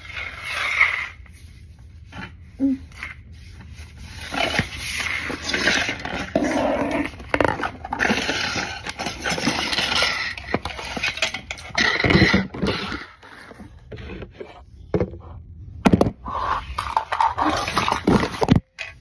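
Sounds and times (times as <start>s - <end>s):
rummaging and scraping under bed: 0.0s - 19.0s.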